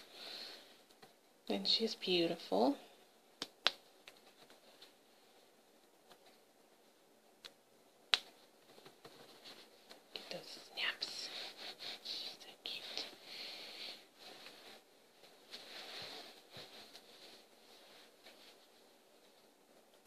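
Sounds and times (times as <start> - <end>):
fabric rustling: 8.3 - 13.3, 13.9 - 20.0.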